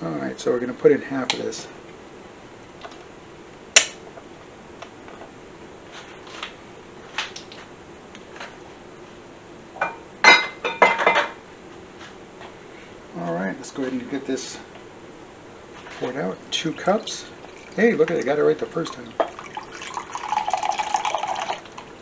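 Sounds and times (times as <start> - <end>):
kitchenware clinking: 9.8 - 11.4, 19.1 - 21.5.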